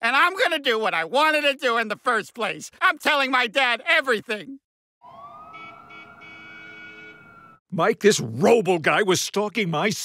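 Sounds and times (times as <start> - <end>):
distant siren wailing: 5.0 - 7.6.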